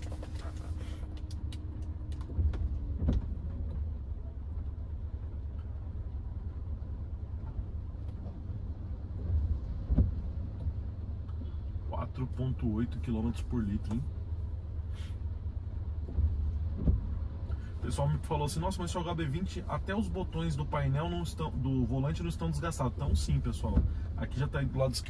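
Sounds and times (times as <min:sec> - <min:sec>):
car engine and road rumble: 0:00.0 - 0:25.0.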